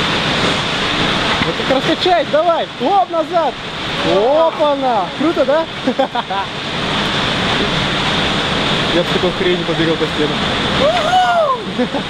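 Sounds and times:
wind noise on microphone: 0:06.5 - 0:11.9
person exclaiming: 0:10.8 - 0:12.0.

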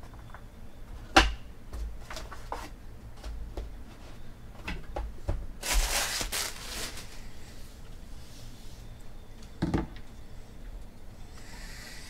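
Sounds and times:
cards rustling: 0:05.6 - 0:07.2.

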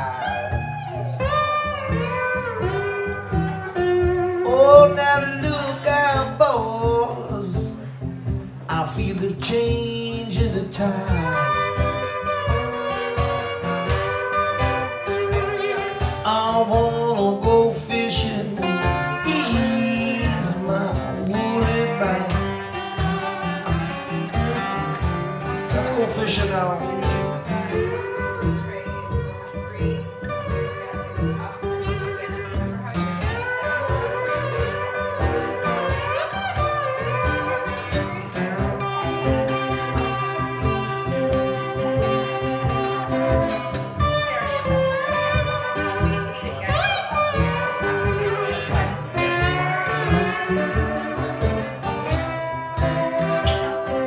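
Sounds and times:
acoustic guitars playing blues: 0:00.0 - 0:54.0.

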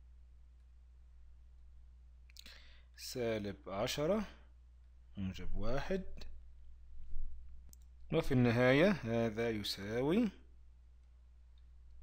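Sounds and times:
low electrical hum: 0:00.0 - 0:12.0
faint clicks: 0:07.7 - 0:08.0.

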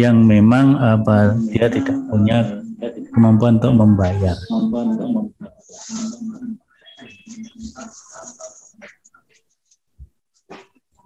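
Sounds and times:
man murmuring: 0:00.6 - 0:05.3.

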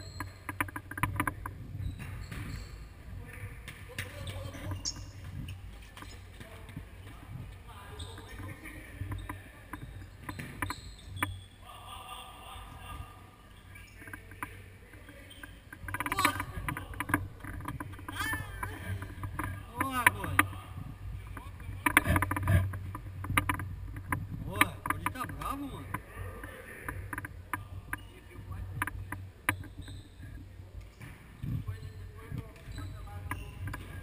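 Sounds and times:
ball kicked and bouncing: 0:00.0 - 0:02.7, 0:08.2 - 0:11.4, 0:21.4 - 0:25.5
shoes squeaking on floor: 0:00.0 - 0:03.1, 0:03.8 - 0:07.2, 0:07.8 - 0:11.6, 0:15.0 - 0:20.6, 0:28.9 - 0:34.0.

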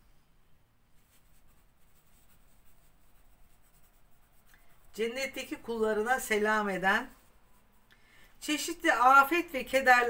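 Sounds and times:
pen scratching on paper: 0:01.0 - 0:07.9.

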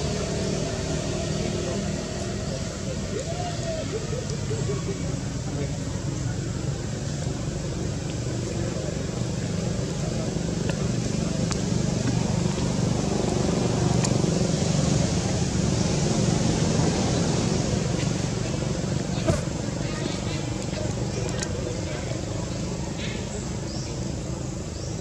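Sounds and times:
low outdoor rumble: 0:00.0 - 0:25.0.

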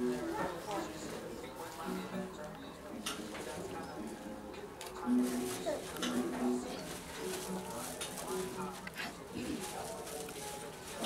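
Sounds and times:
murmur of women's voices: 0:00.0 - 0:11.0.

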